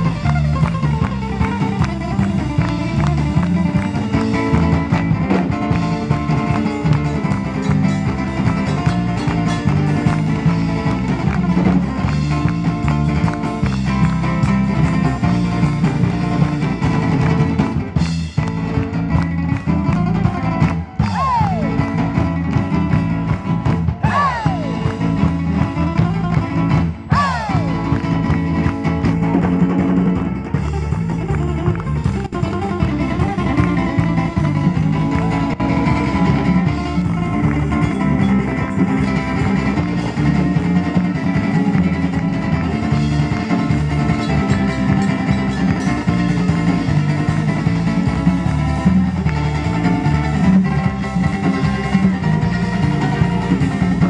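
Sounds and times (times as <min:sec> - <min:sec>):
bass guitar: 0:00.0 - 0:54.0
drums: 0:00.0 - 0:54.0
lead guitar with bent notes: 0:00.0 - 0:54.0.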